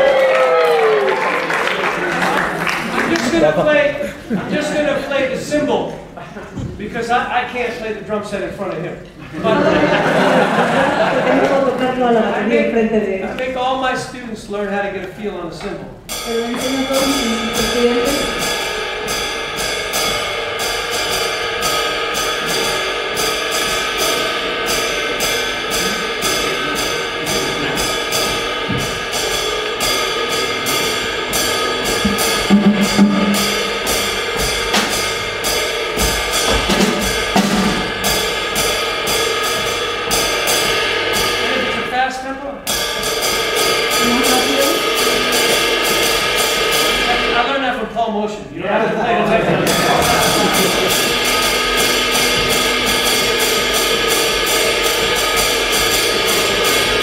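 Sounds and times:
ride cymbal played with drumstick: 0:16.0 - 0:47.8, 0:49.4 - 0:57.0.

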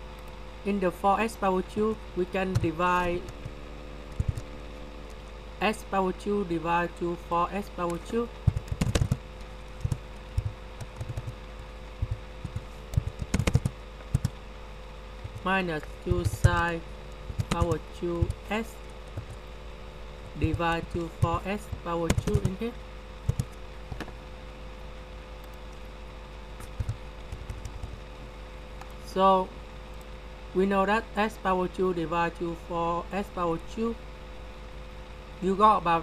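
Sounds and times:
faint steady hum: 0:00.0 - 0:36.0
computer keyboard taps: 0:08.5 - 0:09.2, 0:09.8 - 0:11.4, 0:12.0 - 0:14.4, 0:17.3 - 0:18.4, 0:21.2 - 0:22.6, 0:23.3 - 0:24.1
keyboard key clicks: 0:08.5 - 0:09.2, 0:12.0 - 0:14.4, 0:22.0 - 0:22.6.

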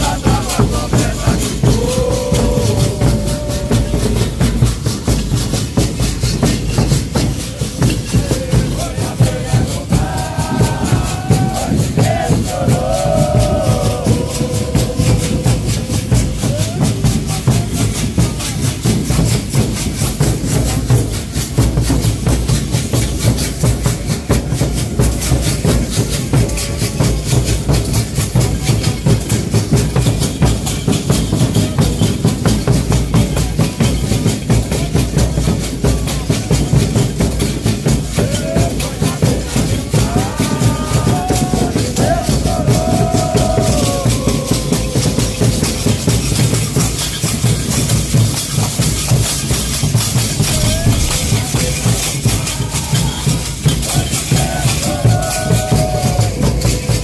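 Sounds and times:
voices singing: 0:00.0 - 0:18.7, 0:37.6 - 0:57.0
drums beaten in steady rhythm: 0:00.0 - 0:57.0
rattles: 0:48.5 - 0:52.7.

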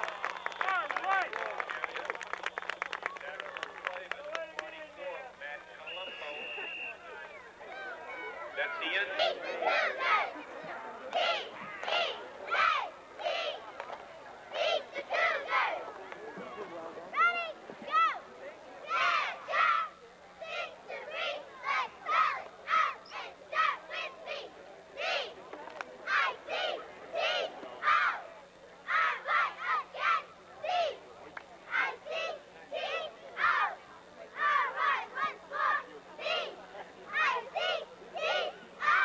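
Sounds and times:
cheerleaders shouting a cheer: 0:07.6 - 0:13.7, 0:14.5 - 0:16.0, 0:17.2 - 0:25.4, 0:26.0 - 0:31.1, 0:31.7 - 0:39.0.

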